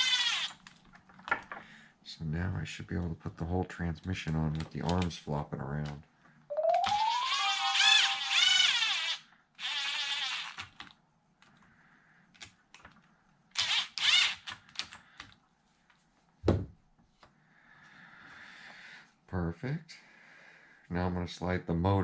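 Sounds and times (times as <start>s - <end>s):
plastic parts clicking and tapping: 4.2s - 5.2s
low thunk: 16.5s - 16.7s.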